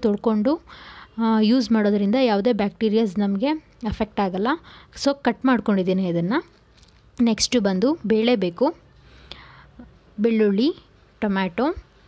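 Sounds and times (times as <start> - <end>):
woman speaking: 0.0 - 6.6, 7.2 - 8.8, 10.2 - 11.9
soft breathy sound: 8.9 - 10.0.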